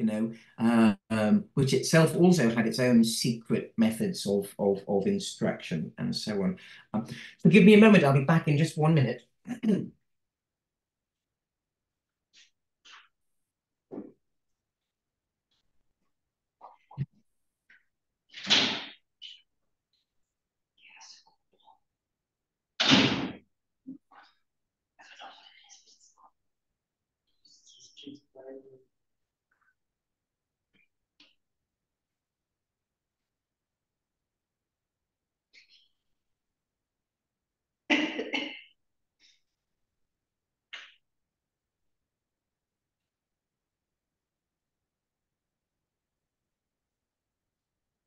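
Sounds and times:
person coughing: 37.9s - 38.7s.

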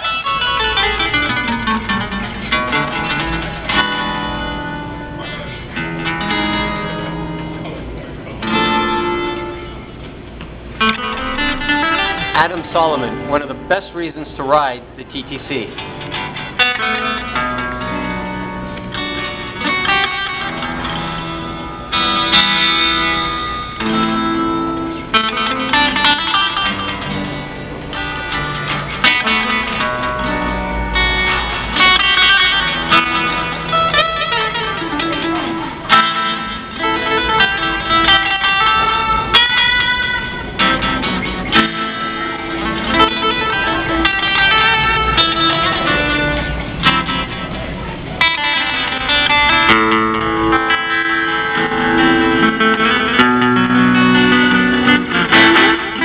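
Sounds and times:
solo electric guitar melody: 0.0s - 56.0s.

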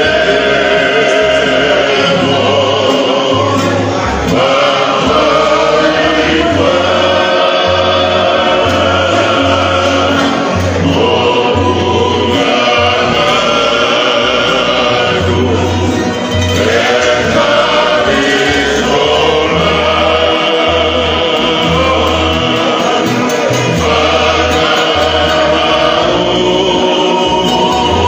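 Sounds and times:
men singing in harmony: 0.0s - 28.0s
strummed acoustic guitars: 0.0s - 28.0s.

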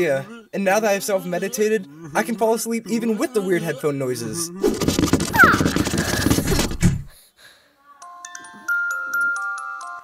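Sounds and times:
cartoon rapid clatter: 4.6s - 7.1s
falling squeak: 5.2s - 6.5s.

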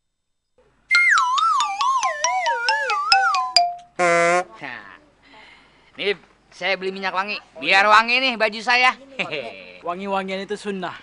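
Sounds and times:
wobbling sliding whistle tone: 0.9s - 3.6s.

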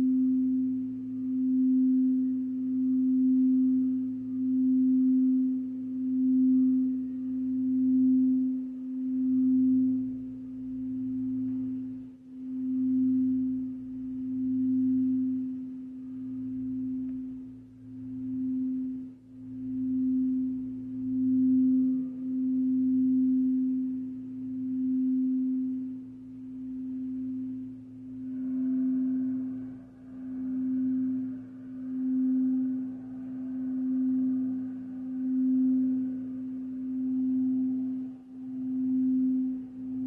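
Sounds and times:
singing bowl humming: 0.0s - 40.0s.

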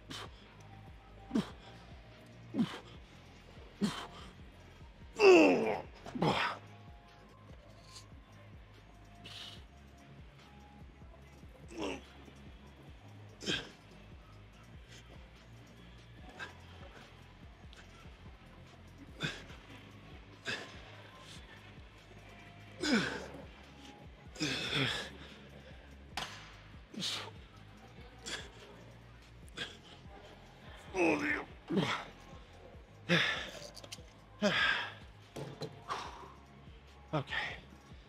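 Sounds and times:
man breathing heavily: 0.0s - 6.6s
faint background music: 0.0s - 38.0s.

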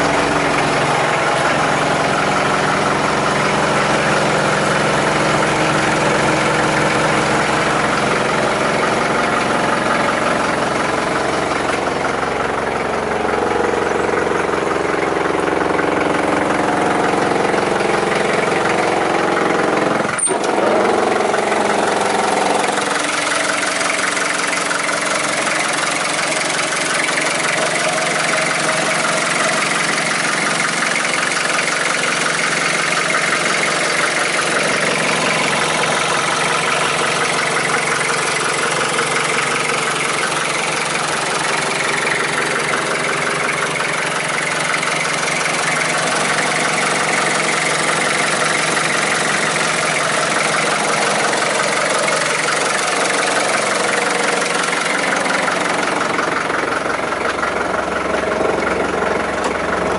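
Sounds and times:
car engine idling: 0.0s - 59.9s.

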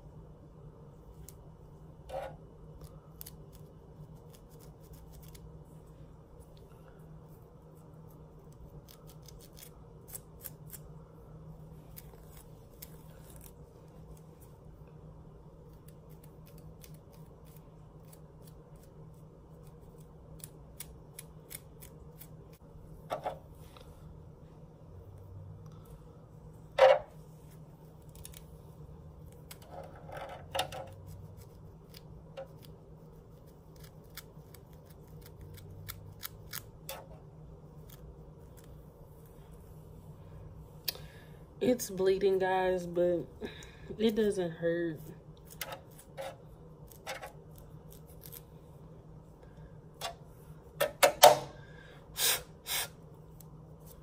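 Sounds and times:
steady low hum: 0.0s - 54.0s
comb scratching scalp: 1.1s - 6.6s, 7.3s - 11.0s, 11.7s - 14.7s, 15.6s - 22.7s, 27.4s - 29.8s, 30.8s - 40.0s.

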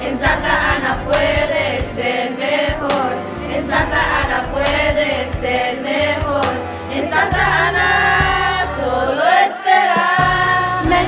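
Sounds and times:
bass line: 0.0s - 2.0s, 3.5s - 5.6s, 10.2s - 11.0s
group of voices singing: 0.0s - 11.0s.

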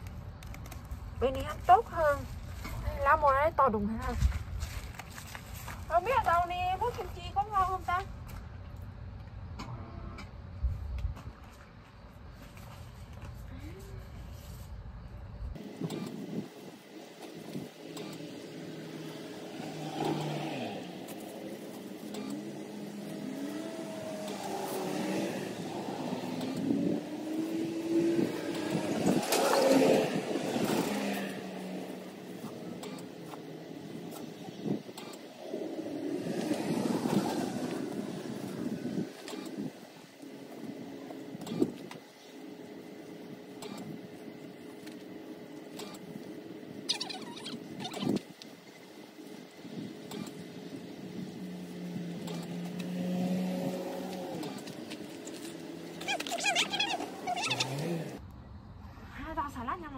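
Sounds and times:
vehicles passing by: 0.0s - 10.7s, 11.6s - 59.9s.

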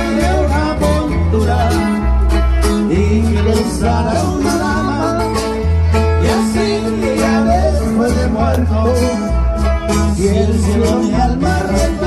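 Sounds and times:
live band playing dance music: 0.0s - 12.0s.

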